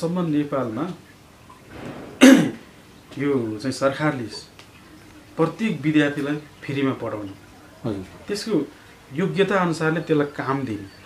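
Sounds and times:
man clearing throat: 2.2s - 2.6s.

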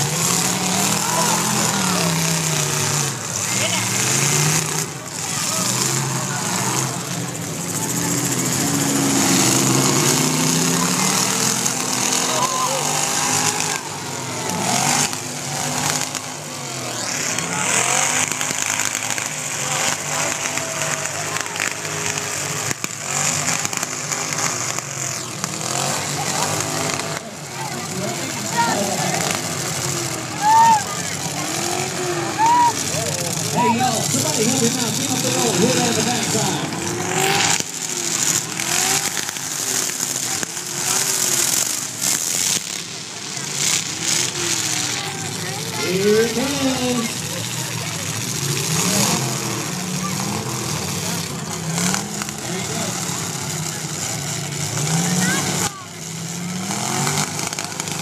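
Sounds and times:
car engines revving: 0.0s - 58.0s
crowd voices: 0.0s - 58.0s.

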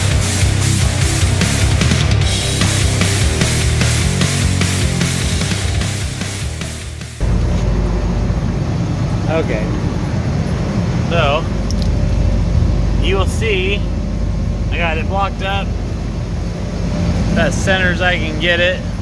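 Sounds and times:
low machinery drone: 0.0s - 19.0s.

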